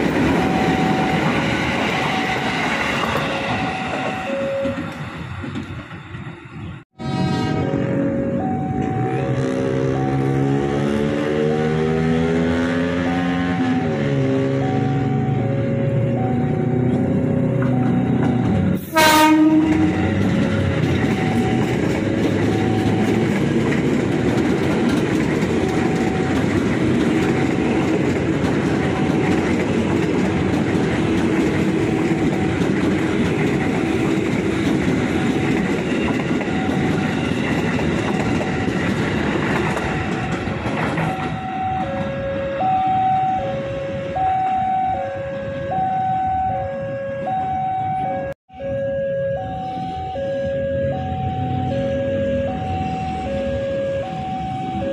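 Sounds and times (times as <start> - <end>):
train wheels rumbling on rail: 0.0 - 45.7
level crossing warning chime: 0.3 - 2.6, 3.3 - 4.9, 8.1 - 10.5, 14.4 - 18.8, 19.8 - 23.3
train horn blast: 7.0 - 8.2, 9.0 - 11.0, 18.8 - 20.2.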